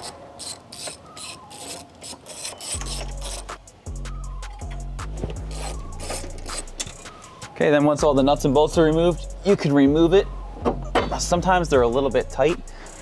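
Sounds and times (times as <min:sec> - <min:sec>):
socket ratchet clicking: 0:00.0 - 0:03.8, 0:05.5 - 0:07.1, 0:12.7 - 0:13.0.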